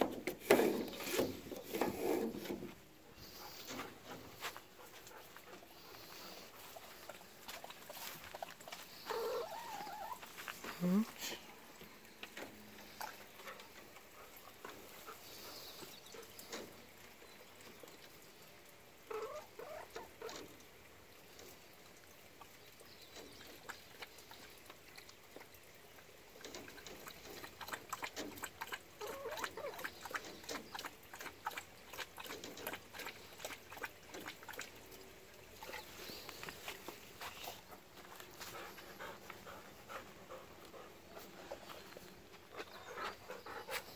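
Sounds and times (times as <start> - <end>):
dog lapping water: 0.2 - 43.9
hen clucking: 8.0 - 11.0, 19.0 - 20.5, 27.6 - 31.6.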